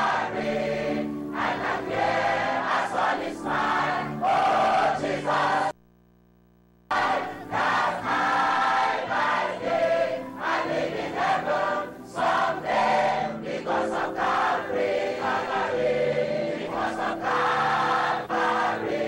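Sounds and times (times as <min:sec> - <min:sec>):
choir singing gospel: 0:00.0 - 0:05.8, 0:06.9 - 0:19.0.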